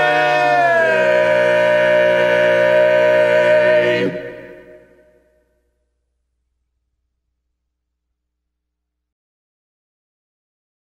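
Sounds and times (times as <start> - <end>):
male a cappella quartet singing: 0.0 - 5.1.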